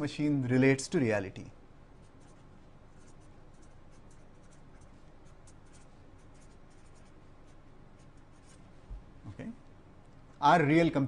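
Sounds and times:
marker pen scratching on paper: 2.0s - 8.6s.

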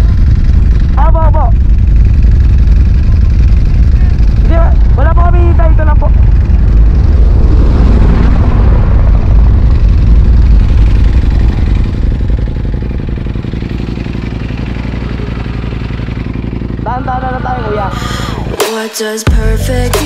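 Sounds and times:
motorcycle engine at speed: 0.0s - 18.7s
wind rush on microphone: 1.8s - 13.4s.

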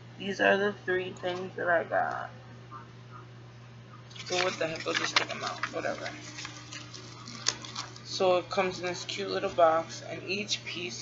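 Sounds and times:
low electrical hum: 0.0s - 11.0s
packaging rustling: 4.1s - 8.1s.

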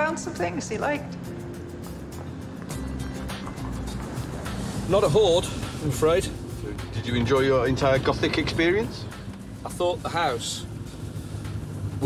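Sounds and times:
background music: 0.0s - 12.0s
van engine rumble: 2.8s - 12.0s.

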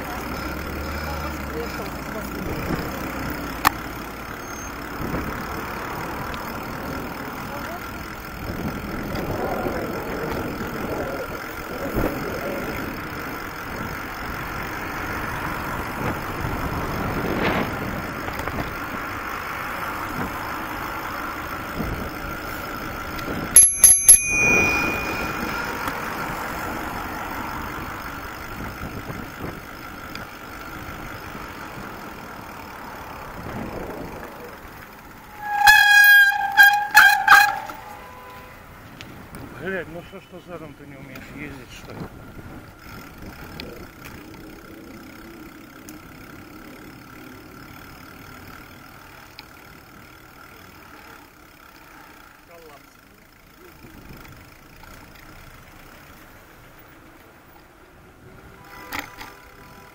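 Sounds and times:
wind and tyre hiss: 0.0s - 59.9s
bicycle bell ring: 23.5s - 26.4s.

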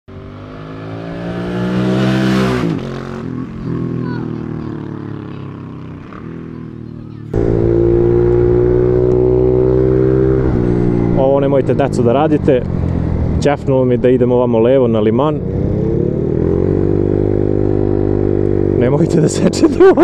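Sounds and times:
motorcycle engine revving: 0.1s - 20.0s.

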